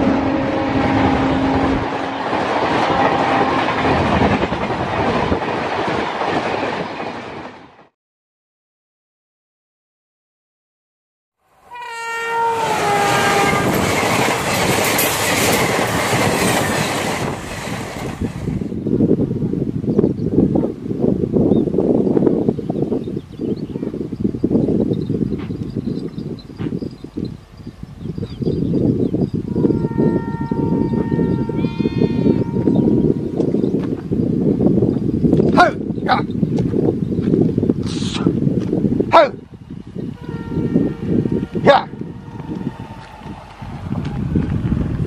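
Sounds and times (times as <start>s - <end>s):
train horn: 0.0s - 4.0s, 11.4s - 14.1s, 29.5s - 33.2s, 40.2s - 43.4s
locomotive rushing past: 0.0s - 7.9s, 11.6s - 18.8s, 39.7s - 45.0s
train wheels clickety-clack: 13.3s - 18.6s.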